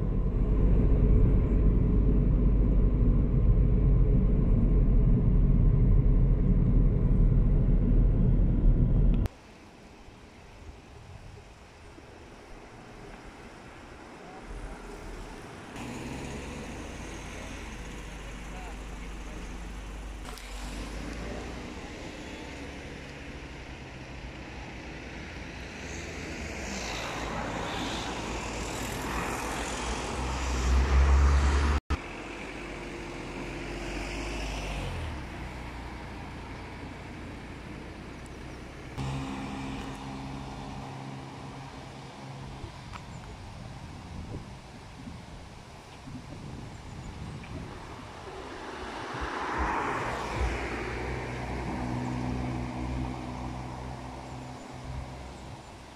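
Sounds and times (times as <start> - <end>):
steady engine hum: 0.0 - 9.3, 14.0 - 44.5
cars passing on road: 0.0 - 9.6, 12.0 - 55.9.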